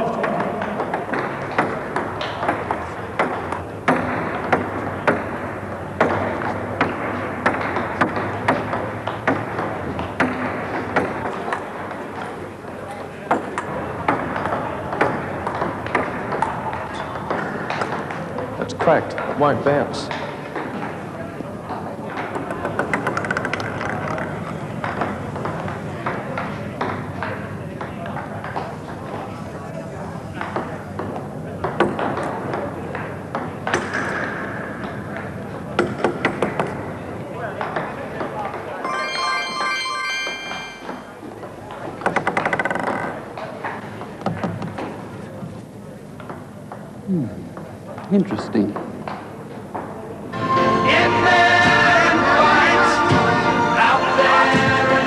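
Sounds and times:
low hum of a hall: 0:00.0 - 0:55.0
table tennis balls clicking: 0:22.2 - 0:25.8.

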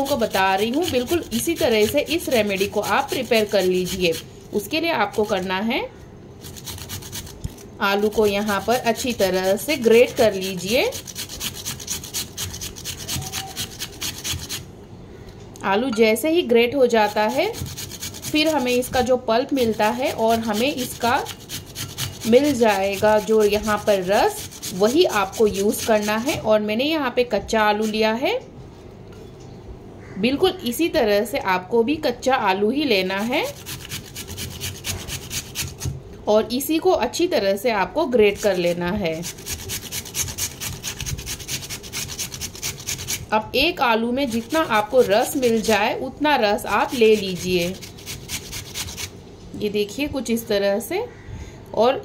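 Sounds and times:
potato grating on metal grater: 0:00.0 - 0:05.7, 0:06.4 - 0:14.7, 0:16.8 - 0:26.6, 0:27.3 - 0:28.3, 0:32.8 - 0:36.0, 0:37.0 - 0:49.2.

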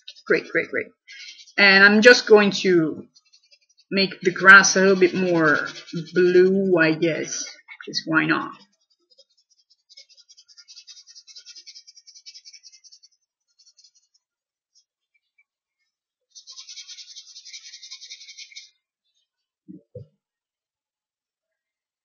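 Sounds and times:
colouring tool scratching on paper: 0:00.0 - 0:00.4, 0:01.1 - 0:07.6, 0:08.5 - 0:14.9, 0:16.3 - 0:18.8.

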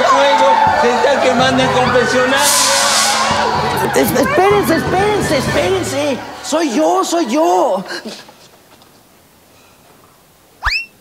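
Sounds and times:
upward whistle glide: 0:01.8 - 0:04.0, 0:10.6 - 0:11.0.

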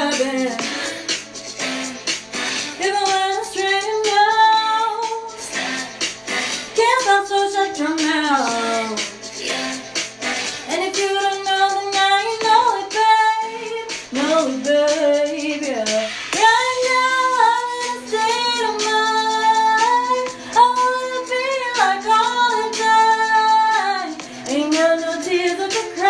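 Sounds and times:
woman singing: 0:00.0 - 0:01.2, 0:02.7 - 0:26.0.

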